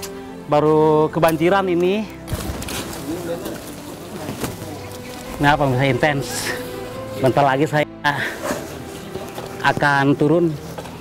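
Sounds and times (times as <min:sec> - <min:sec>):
steady outdoor noise: 0:00.0 - 0:11.0.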